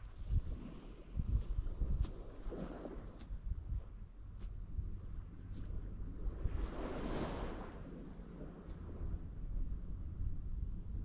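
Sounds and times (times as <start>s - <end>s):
wind rumble on microphone: 0.0s - 11.0s
wave washing up sand: 6.2s - 9.2s.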